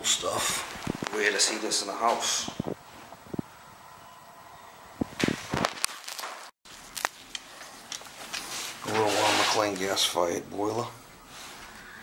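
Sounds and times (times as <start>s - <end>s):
footsteps: 0.4s - 3.2s, 5.0s - 10.0s.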